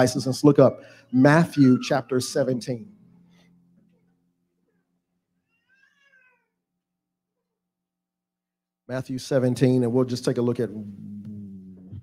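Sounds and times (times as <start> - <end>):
faint high-pitched cry: 1.4 - 2.2, 5.4 - 6.6.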